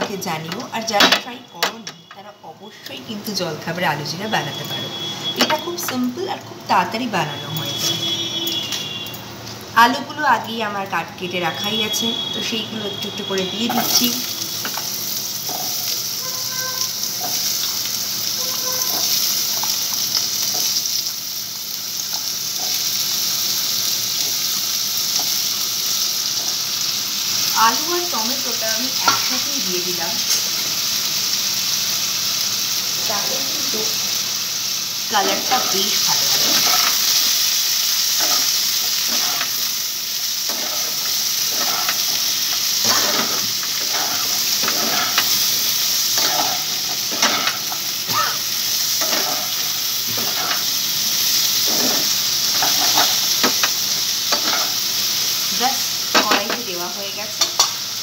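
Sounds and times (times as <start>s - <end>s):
food sizzling in hot oil: 0.0s - 58.0s
spatula scraping pan: 18.4s - 19.9s, 35.2s - 37.2s, 38.0s - 39.7s, 40.4s - 47.9s, 48.8s - 50.8s, 51.4s - 54.8s.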